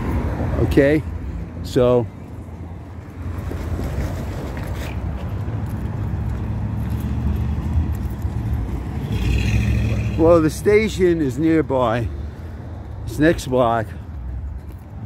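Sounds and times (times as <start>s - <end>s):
motor vehicles rumbling: 0.0s - 15.0s.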